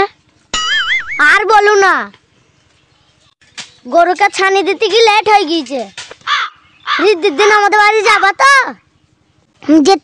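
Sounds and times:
child talking loudly: 1.2s - 2.1s, 3.9s - 5.9s, 7.0s - 8.8s, 9.6s - 10.0s.

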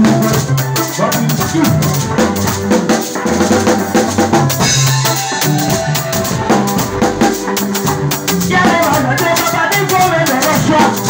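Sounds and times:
drum kit groove: 0.0s - 11.0s
song with bass and melody: 0.0s - 11.0s.

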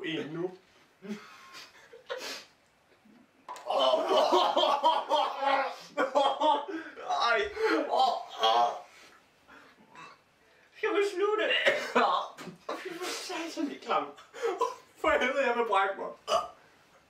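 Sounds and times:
young men laughing: 1.0s - 2.4s, 3.6s - 8.8s, 11.6s - 15.0s
wordless vocal reactions: 3.0s - 4.5s.

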